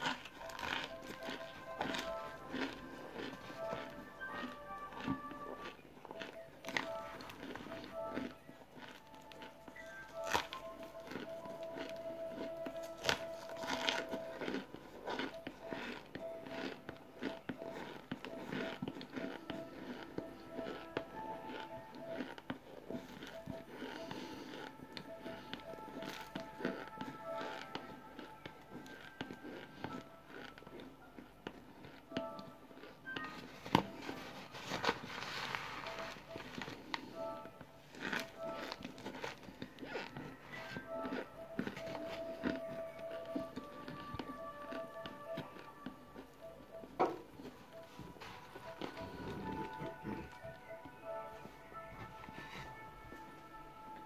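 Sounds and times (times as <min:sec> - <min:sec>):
background music: 0:00.0 - 0:54.0
crunching and chewing: 0:00.0 - 0:54.0.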